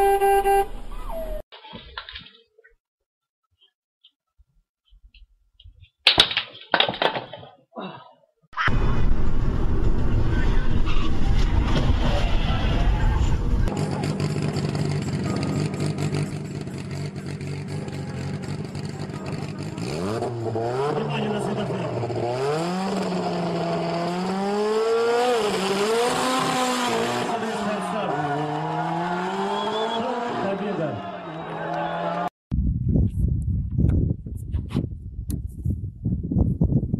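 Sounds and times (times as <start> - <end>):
low rumble of wind and road noise: 8.7 - 13.7
car engine revving and accelerating: 12.0 - 30.8.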